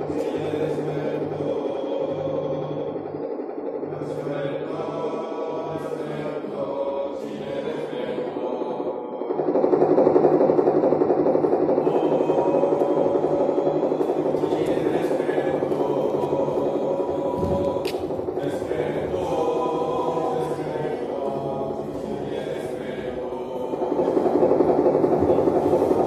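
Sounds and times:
electronic drone music: 0.0s - 26.0s.

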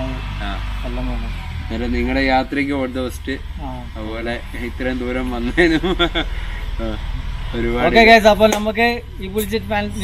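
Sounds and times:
men talking: 0.0s - 10.0s.

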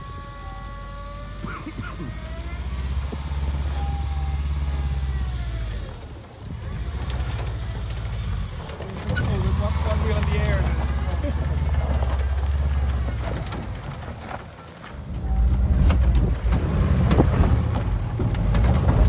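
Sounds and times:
van engine running low: 0.0s - 19.0s.

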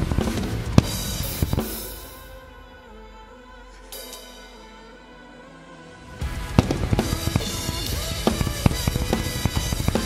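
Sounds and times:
acoustic drum kit played hard: 0.0s - 2.8s, 6.0s - 10.0s
nu metal song: 0.0s - 10.0s.

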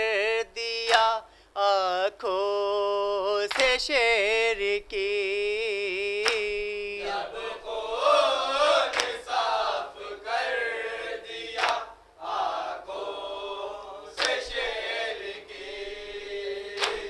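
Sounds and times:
group chanting a lament: 6.2s - 17.0s
hand slaps on chest: 8.9s - 9.2s, 11.6s - 11.8s, 14.2s - 14.4s, 16.8s - 17.0s.

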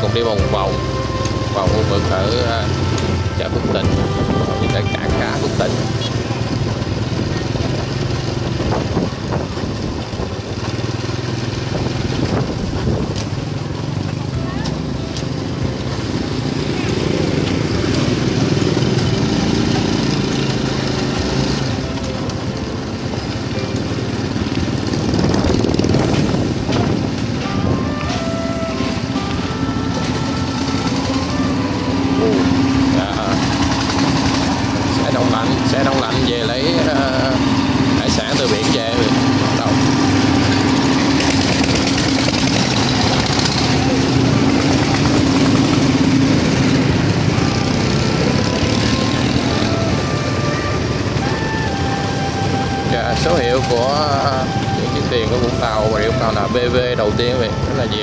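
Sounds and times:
motorbike engine running: 0.0s - 58.0s
road noise: 0.0s - 58.0s.

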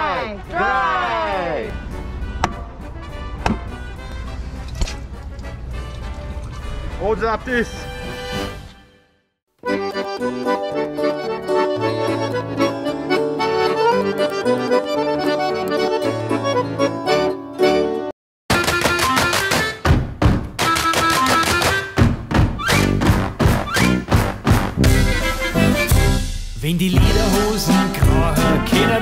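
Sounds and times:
accordion music: 1.9s - 9.0s, 9.6s - 19.9s, 20.6s - 29.0s.

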